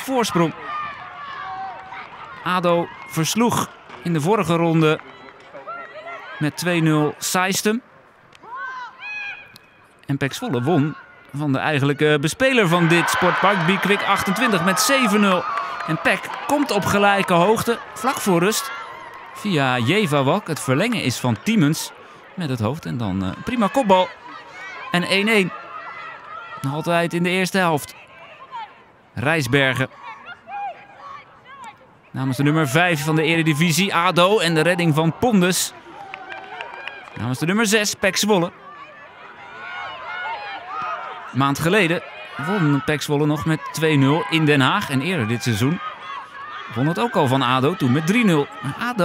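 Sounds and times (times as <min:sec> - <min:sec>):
distant shouts and calls: 0:38.3 - 0:49.0.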